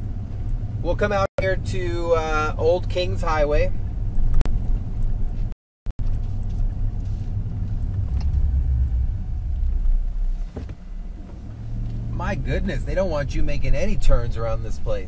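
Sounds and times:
car rumble inside cabin: 0.0 - 15.0.

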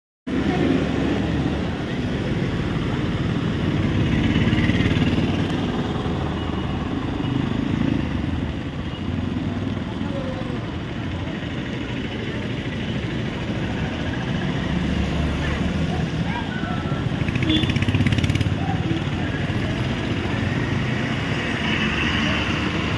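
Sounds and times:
bus passing on wet road: 0.3 - 8.6
traffic engine rumble: 0.3 - 22.9
motorcycle passing: 2.3 - 6.4, 13.4 - 22.9.

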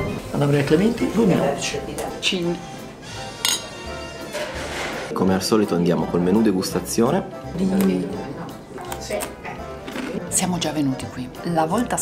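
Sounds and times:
background music: 0.0 - 12.0
tableware clink: 3.4 - 5.1.

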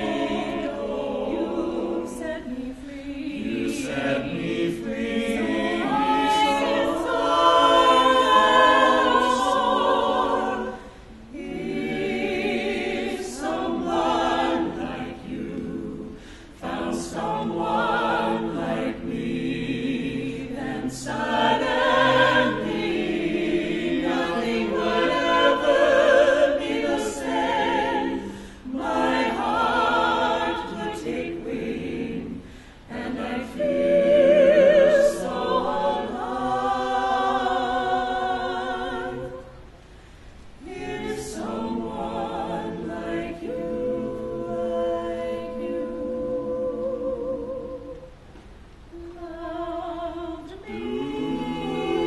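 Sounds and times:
mixed choir singing in harmony: 0.0 - 52.0.

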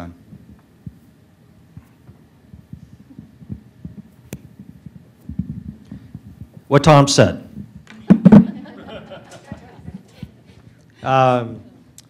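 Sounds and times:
microphone handling thumps: 0.2 - 8.7.

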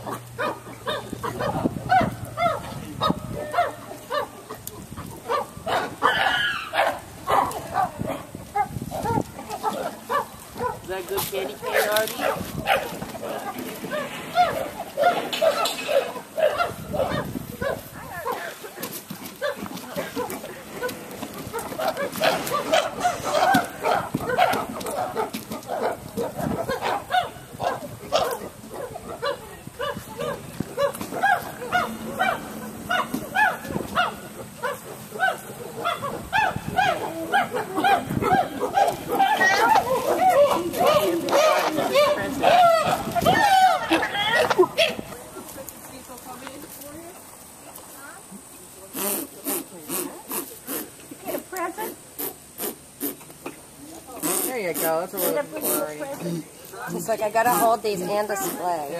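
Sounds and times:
chimpanzees hooting: 19.5 - 45.1.

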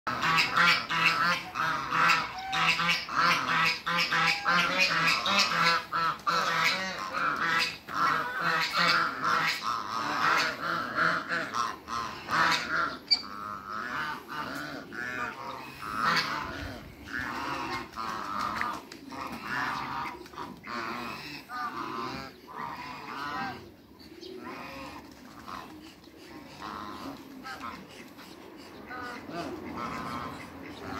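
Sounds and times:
geese honking: 0.1 - 23.8, 24.4 - 30.9.

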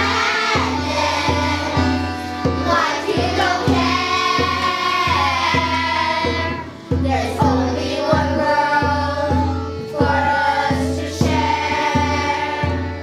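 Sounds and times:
children singing in chorus: 0.0 - 13.0
instrumental accompaniment with beat: 0.0 - 13.0.

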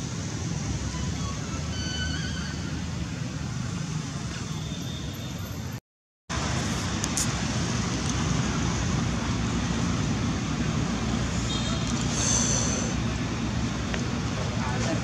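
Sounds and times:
road traffic rumble: 0.0 - 15.0.

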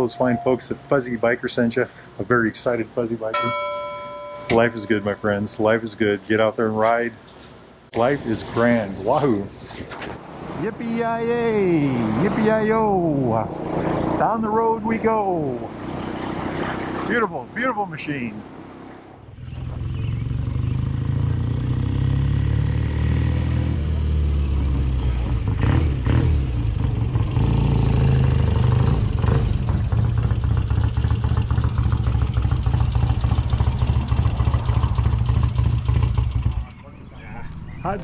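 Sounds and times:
motorcycle engine revving: 11.6 - 17.6, 18.4 - 36.8.

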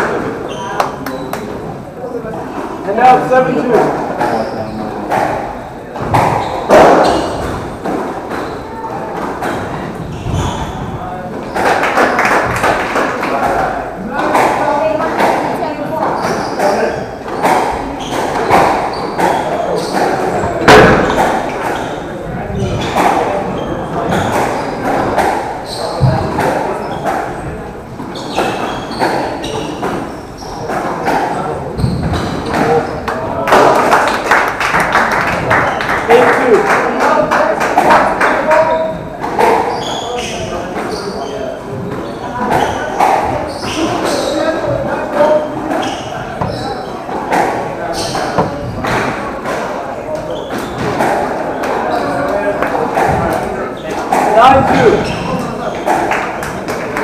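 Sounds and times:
murmur of voices: 0.0 - 57.0
squash ball hitting rackets and walls: 3.0 - 32.9, 37.0 - 57.0.

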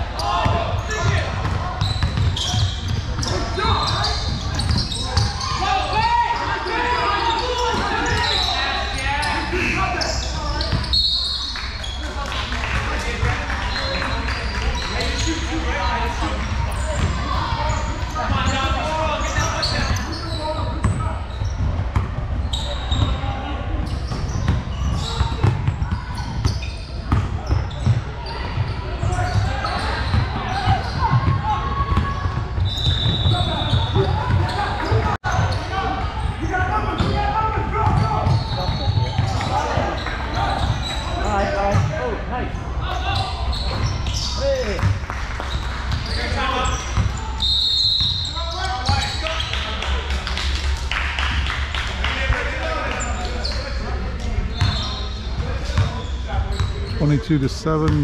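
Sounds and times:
footwork on basketball court: 0.0 - 58.0
echoing indistinct voices: 51.5 - 58.0.

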